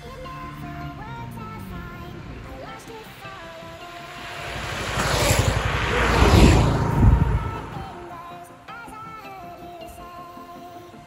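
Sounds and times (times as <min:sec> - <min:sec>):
motorcycles passing at full throttle: 0:00.0 - 0:08.6.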